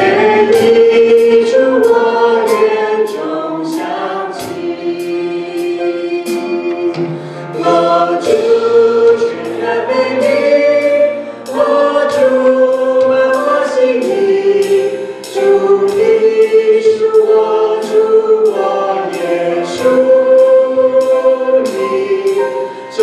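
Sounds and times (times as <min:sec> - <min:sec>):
band with percussion beat: 0:00.0 - 0:23.0
group singing gospel song: 0:00.0 - 0:23.0.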